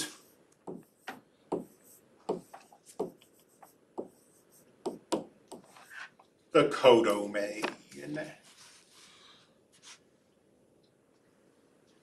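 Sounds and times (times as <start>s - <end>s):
stylus tapping on tablet screen: 0.6s - 4.2s, 4.8s - 5.7s.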